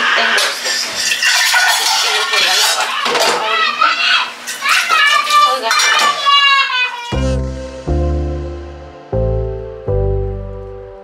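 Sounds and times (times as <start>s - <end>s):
dishes clattering in metal sink: 0.0s - 3.5s, 4.5s - 6.3s
child chattering: 6.2s - 7.6s.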